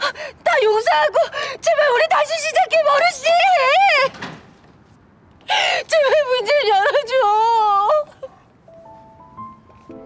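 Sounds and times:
woman sobbing: 5.6s - 8.5s.

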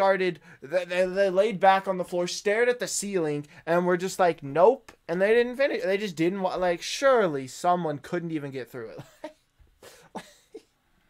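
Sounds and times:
man laughing quietly: 9.0s - 10.8s.

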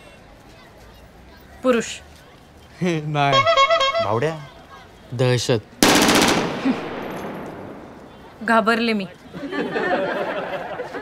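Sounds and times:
loud rattling bangs: 5.8s - 8.4s.

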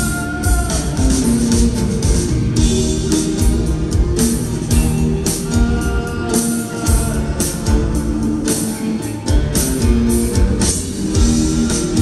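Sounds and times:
drum and cymbal strokes: 0.0s - 12.0s
rock band playing live: 0.0s - 12.0s.

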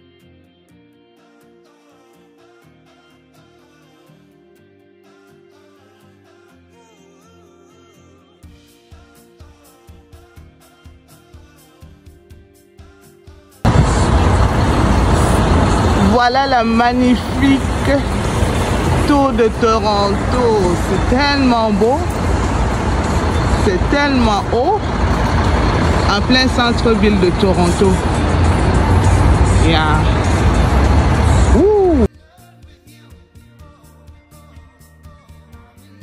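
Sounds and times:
road traffic rumble: 13.7s - 32.1s.

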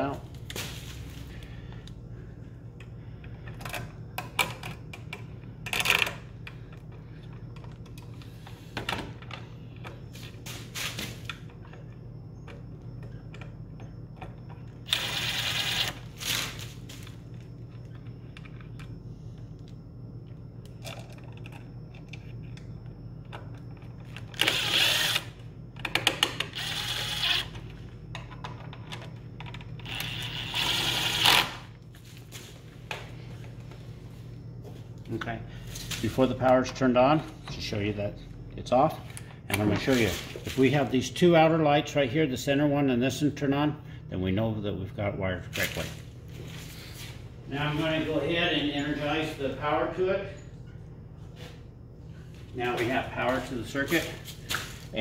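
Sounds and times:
cordless drill driving screws: 14.9s - 16.0s, 24.4s - 25.3s, 26.5s - 27.5s, 29.9s - 31.5s.

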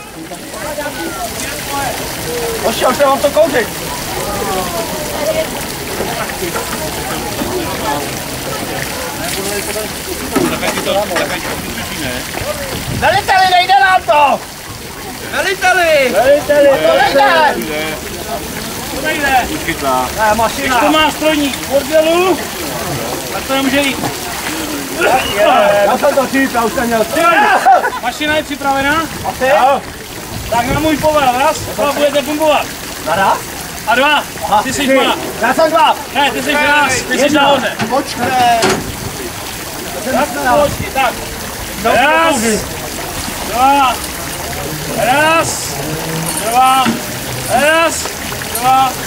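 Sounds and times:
people shouting: 0.0s - 5.6s, 15.8s - 17.8s, 24.2s - 28.1s, 44.8s - 48.0s
people talking indistinctly: 0.0s - 49.0s.

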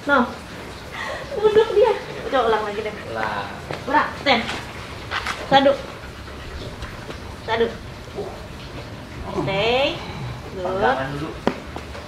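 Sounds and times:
dog panting: 1.5s - 11.4s.

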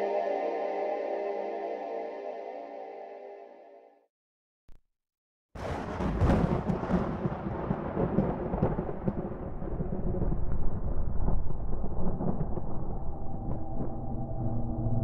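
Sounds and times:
deep rolling rumble with crackles: 5.6s - 15.0s.

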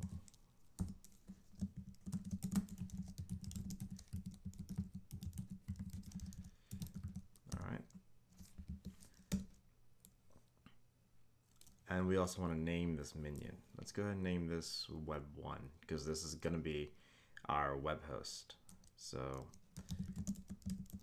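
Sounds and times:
typing on computer keyboard: 0.0s - 7.6s, 18.7s - 21.0s.

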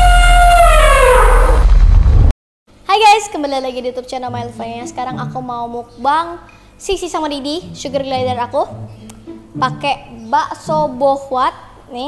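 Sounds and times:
held note sliding down: 0.0s - 1.6s
deep bass: 0.0s - 2.3s.

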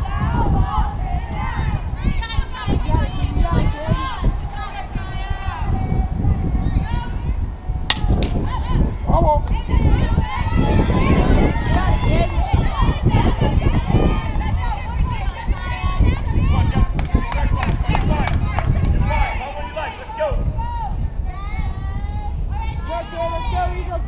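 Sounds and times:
players chattering and calling out: 0.0s - 24.0s
wind rumble on microphone: 0.0s - 24.0s.

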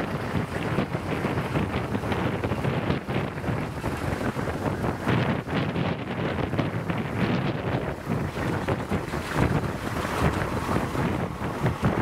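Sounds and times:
locomotive engine rumbling: 0.0s - 12.0s
wind buffeting microphone: 0.0s - 12.0s.

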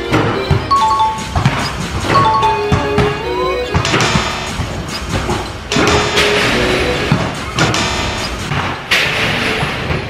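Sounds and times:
music playing: 0.0s - 4.8s
basketballs thudding on hoop: 0.2s - 3.2s.

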